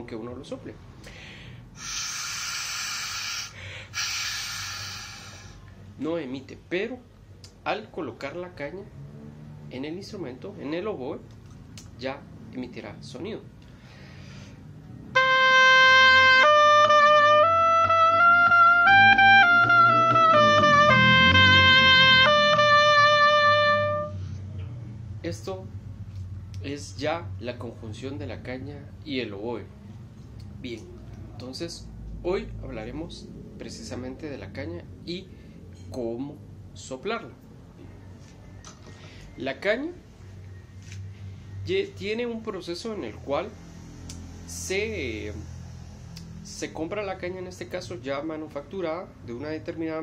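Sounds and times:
airy hiss of breath: 1.0 - 5.7, 13.8 - 14.7
oboe playing held notes: 15.2 - 24.3.

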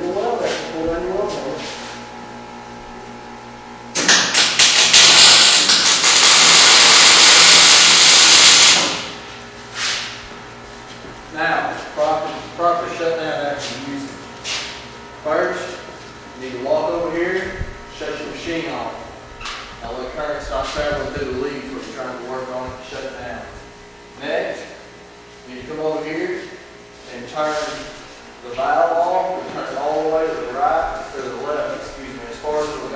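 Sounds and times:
welder arc burning: 3.9 - 9.2
welder arc popping: 3.9 - 9.3.

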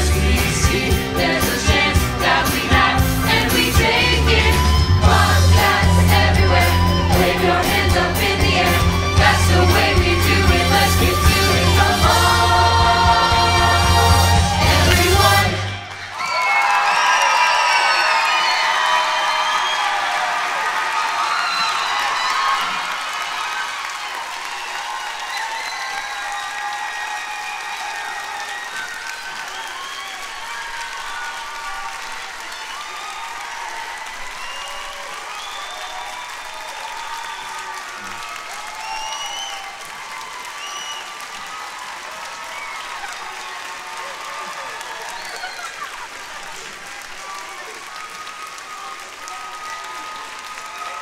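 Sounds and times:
audience applauding and cheering: 0.0 - 51.0
shouts and whoops: 4.1 - 7.6, 13.8 - 51.0.

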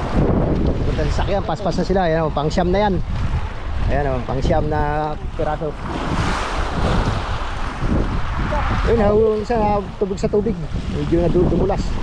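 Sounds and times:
wind rumbling on microphone: 0.0 - 12.0
small waves on pebble shore: 5.3 - 9.0.

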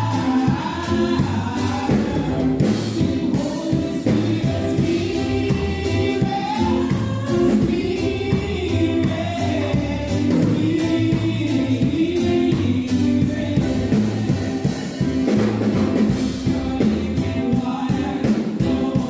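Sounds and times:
bass accompaniment: 0.0 - 19.0
drum beat: 0.0 - 19.0
women singing gospel: 0.0 - 19.0.

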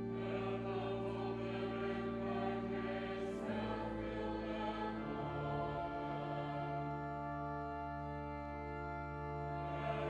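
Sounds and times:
youth choir singing sacred music: 0.0 - 7.5, 9.5 - 10.0.

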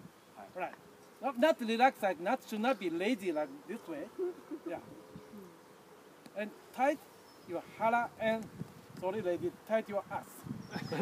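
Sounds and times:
faint steady buzz: 0.0 - 11.0
man murmuring speech: 3.4 - 5.6.

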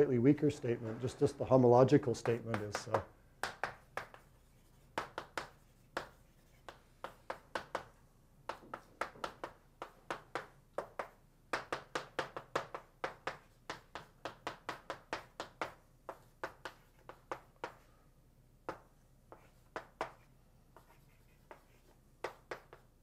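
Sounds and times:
chalk tapping on blackboard: 2.2 - 18.0, 18.6 - 23.0.

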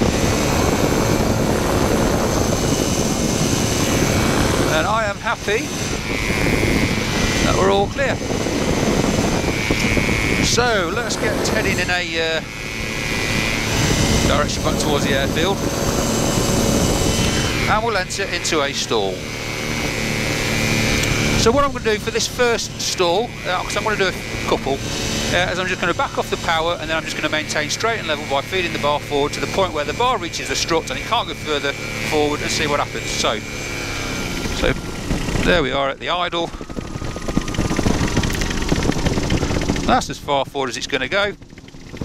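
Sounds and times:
rushing airflow: 0.0 - 18.4, 31.7 - 40.2
microlight propeller engine running: 0.0 - 42.0.

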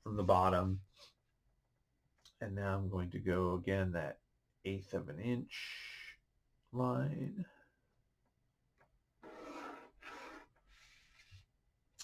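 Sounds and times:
pencil drawn along a ruler: 9.2 - 11.5.

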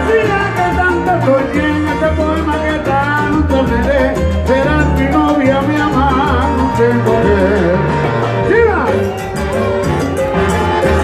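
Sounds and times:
congas: 0.0 - 11.0
pulsing bass line: 0.0 - 11.0
salsa band playing live: 0.0 - 11.0.

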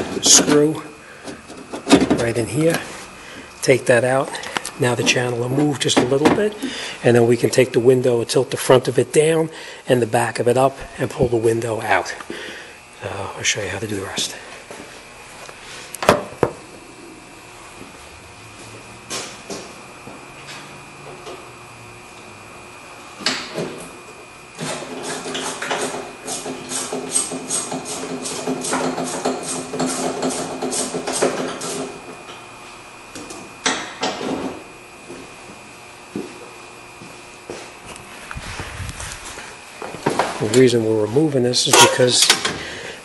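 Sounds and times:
steady hum: 0.0 - 43.0.

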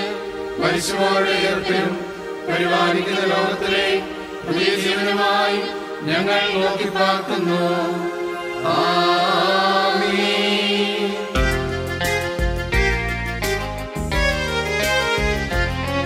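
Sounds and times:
mixed choir singing a chant: 0.0 - 11.4
electronic keyboard: 0.0 - 16.0.

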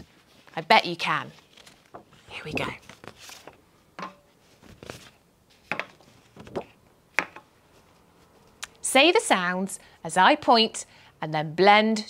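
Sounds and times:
paper cards tapping and rustling: 1.3 - 7.5.

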